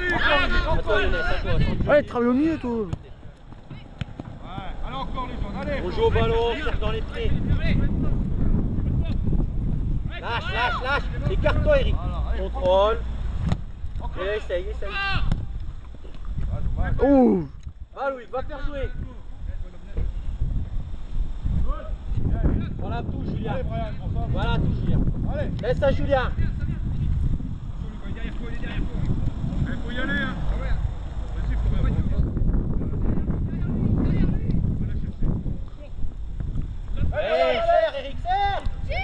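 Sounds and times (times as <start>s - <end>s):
wind rumbling on microphone: 0.0s - 39.0s
distant shouting voices: 37.0s - 39.0s.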